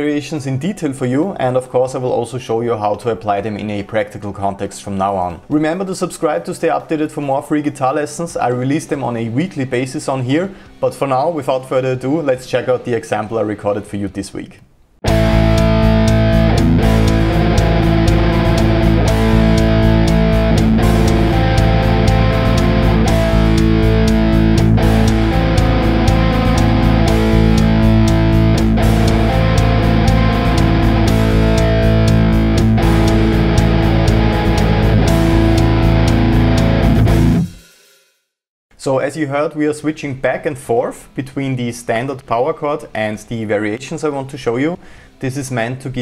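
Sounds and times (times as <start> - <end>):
distorted electric guitar riff: 15.0 - 37.7.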